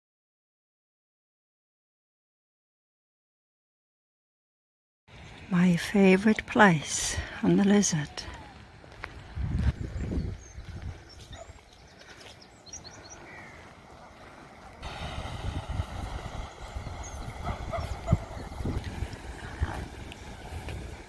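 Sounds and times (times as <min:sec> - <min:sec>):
wind buffeting microphone: 0:05.2 - 0:21.0.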